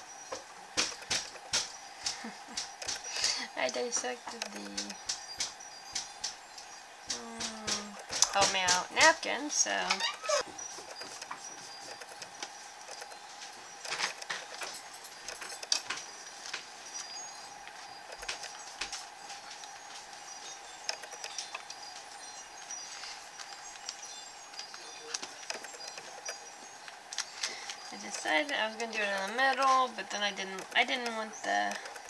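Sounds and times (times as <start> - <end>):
steady faint hum: 0.0 - 32.0.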